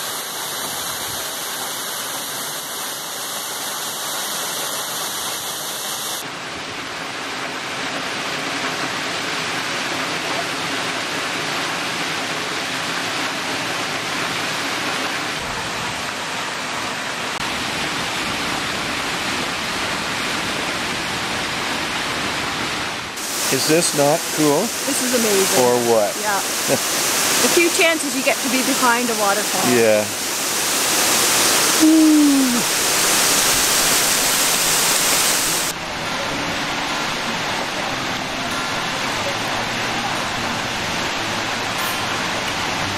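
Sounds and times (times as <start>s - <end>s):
waterfall splashing onto rock: 23.2s - 35.8s.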